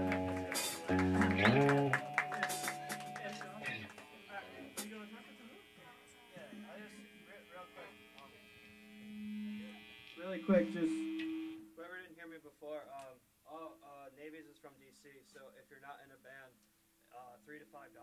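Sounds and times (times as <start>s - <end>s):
faint talking: 0.0s - 8.7s
guitar chord ringing: 0.0s - 11.8s
guitar amplifier hum: 0.0s - 12.1s
man speaking: 9.7s - 11.1s, 11.8s - 18.0s.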